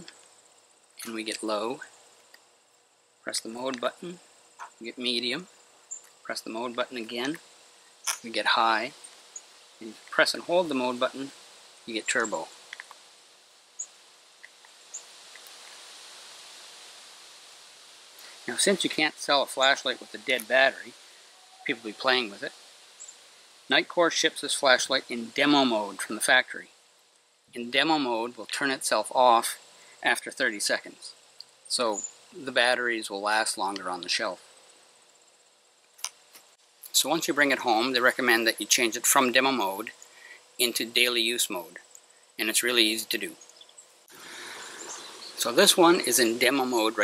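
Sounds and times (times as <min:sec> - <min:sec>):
faint cricket chirping: 0:00.0 - 0:47.0
steady high hiss: 0:00.0 - 0:47.0.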